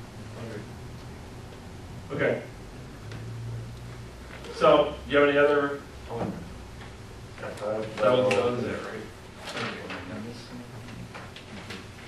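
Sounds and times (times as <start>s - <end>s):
meeting room background: 0.0s - 12.0s.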